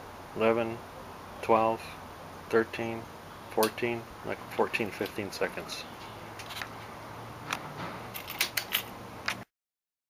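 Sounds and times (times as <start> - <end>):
steady low hum: 0.0 - 9.4.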